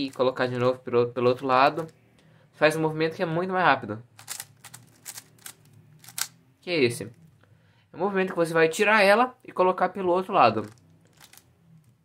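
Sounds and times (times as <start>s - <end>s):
puzzle cube layers clicking: 4.2s - 6.4s.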